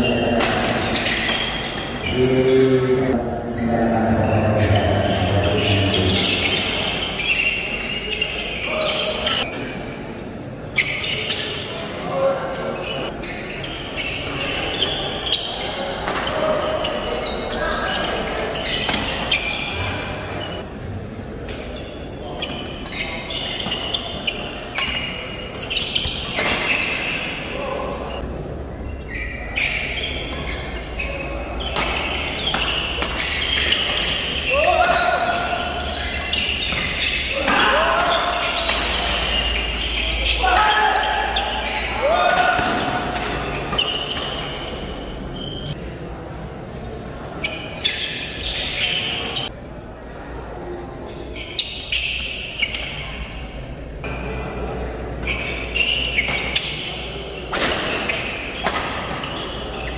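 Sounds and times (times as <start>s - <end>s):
shoes squeaking on court: 0.0s - 2.8s, 4.3s - 9.8s, 10.7s - 11.8s, 12.8s - 20.7s, 21.5s - 45.8s, 47.4s - 49.5s, 51.0s - 54.4s, 55.2s - 59.9s
murmur of crowd voices: 0.0s - 59.9s
voices calling out: 22.2s - 45.8s.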